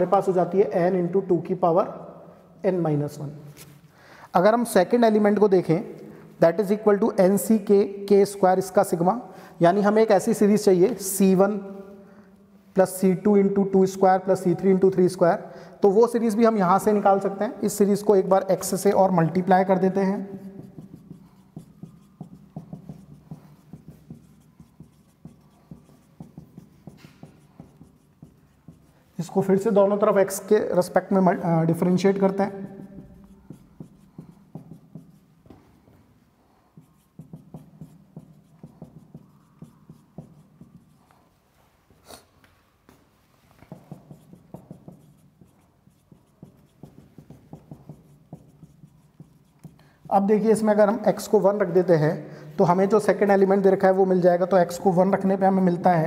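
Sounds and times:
marker writing on whiteboard: 16.0 - 52.1.

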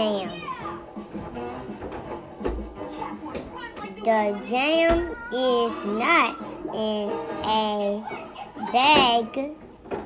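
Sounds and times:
television music in background: 0.0 - 10.0.

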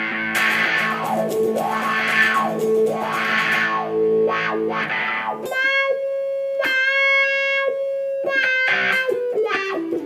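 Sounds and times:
distorted electric guitar with wah sweep: 0.0 - 10.0.

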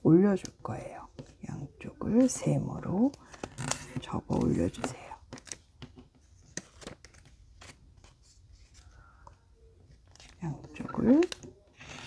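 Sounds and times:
paper being folded and creased: 3.2 - 8.9, 9.8 - 12.0.

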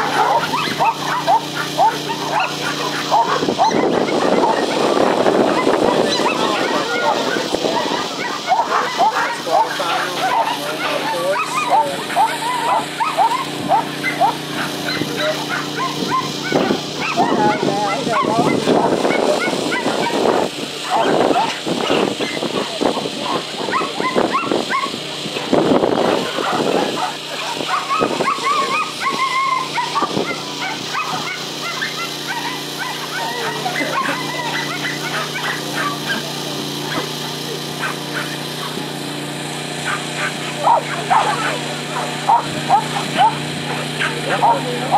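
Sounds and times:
dogs barking and yipping: 0.0 - 44.9
steady low hum: 0.0 - 44.9.

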